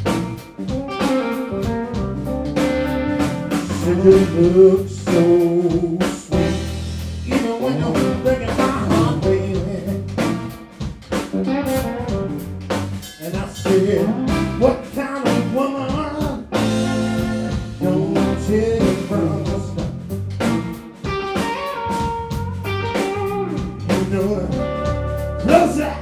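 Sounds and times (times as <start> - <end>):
drum kit: 0.0 - 26.0
electric bass: 0.0 - 26.0
electric guitar with bent notes: 0.0 - 26.0.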